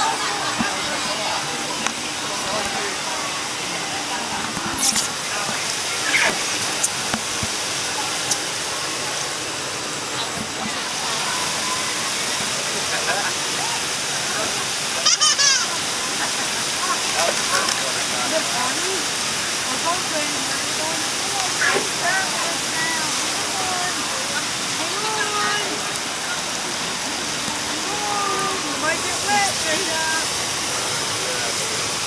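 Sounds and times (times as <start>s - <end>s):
churning water rushing: 0.0s - 32.0s
voices: 0.0s - 32.0s.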